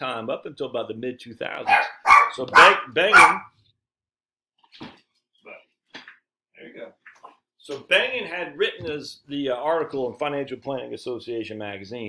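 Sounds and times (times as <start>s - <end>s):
dog barking: 1.6s - 3.5s.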